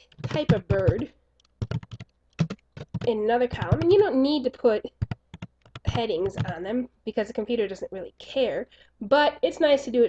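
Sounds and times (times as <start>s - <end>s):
keyboard keys clicking: 0.0s - 4.0s, 4.9s - 6.6s.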